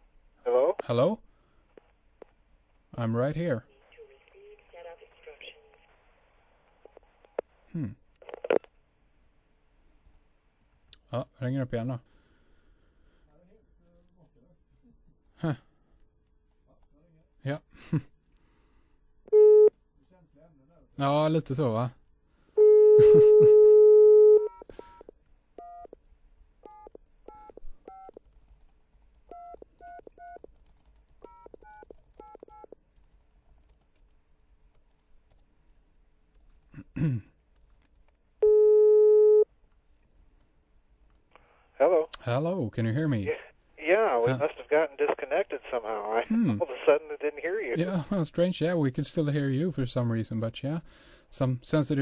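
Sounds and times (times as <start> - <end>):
touch-tone phone beeps: 38.4 - 39.5.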